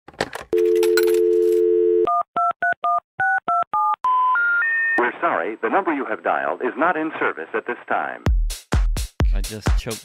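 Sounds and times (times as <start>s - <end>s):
landline dial tone: 0.5s - 2.8s.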